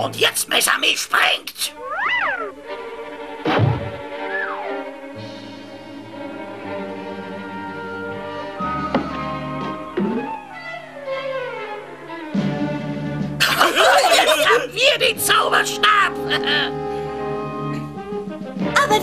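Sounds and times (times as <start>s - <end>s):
cartoon orchestral music: 1.8s - 5.2s, 13.4s - 17.9s
thuds: 3.4s - 4.0s.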